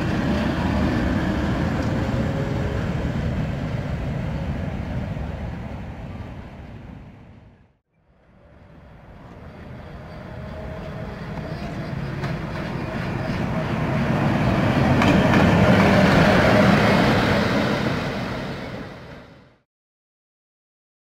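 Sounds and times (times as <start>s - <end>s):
train wheels rumbling on rail: 0.0s - 7.3s, 8.2s - 19.6s.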